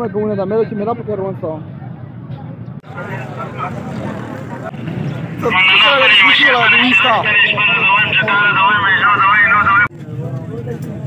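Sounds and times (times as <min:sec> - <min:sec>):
people talking: 0:05.4 - 0:09.9.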